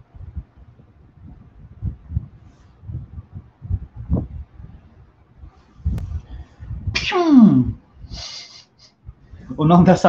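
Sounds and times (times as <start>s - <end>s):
man sneezing: 7.0s - 7.8s.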